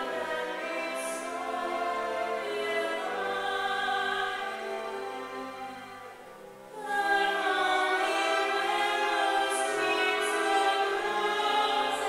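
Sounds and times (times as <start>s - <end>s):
woman singing operatically: 0.0s - 4.8s, 6.8s - 12.0s.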